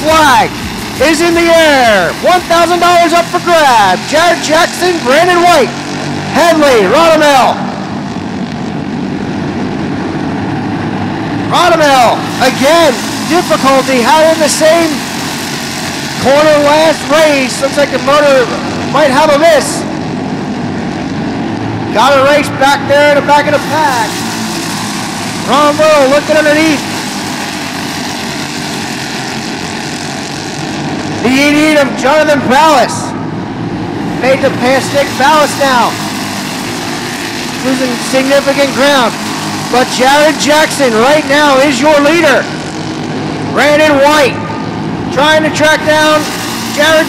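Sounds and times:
racing kart engines droning: 0.0s - 47.0s.

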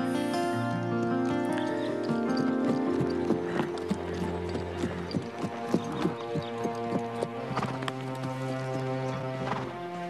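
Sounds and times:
horse hoofbeats clip-clopping: 0.0s - 10.0s
soft music with held chords: 0.0s - 10.0s.

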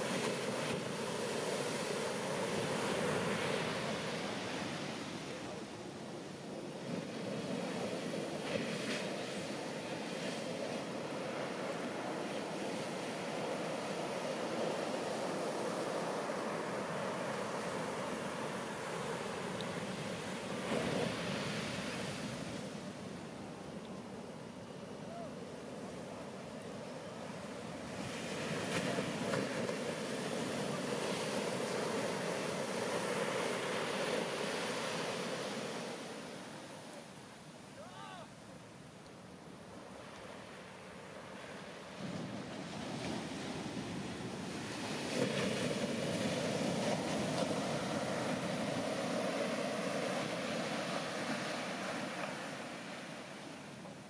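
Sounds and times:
ocean waves breaking on shore: 0.0s - 54.0s.

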